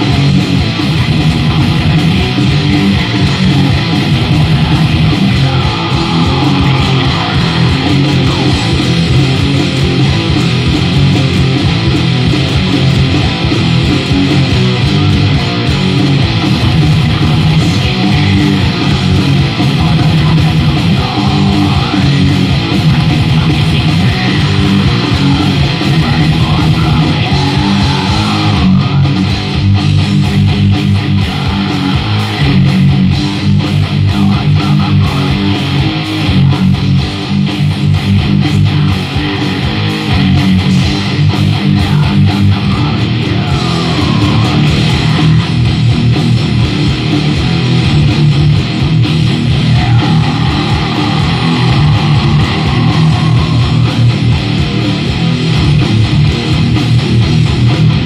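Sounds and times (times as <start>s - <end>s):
electric guitar metal riffs: 0.0s - 58.0s.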